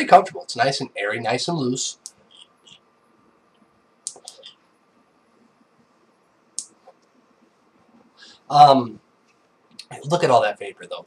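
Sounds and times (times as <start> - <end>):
sharp click: 4.0 - 4.5.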